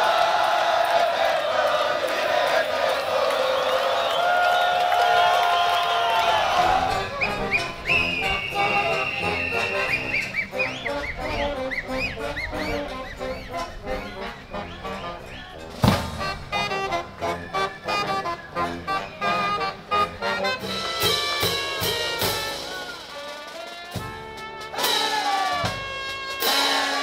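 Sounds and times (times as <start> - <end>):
brass band playing: 5.2 - 27.0
drum and cymbal hit: 15.8 - 16.5, 20.8 - 27.0.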